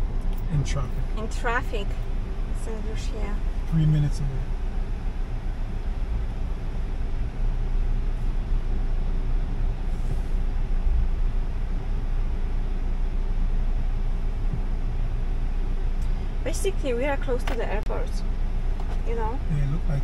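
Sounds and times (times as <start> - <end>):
car engine idling in cabin: 0.0 - 20.0.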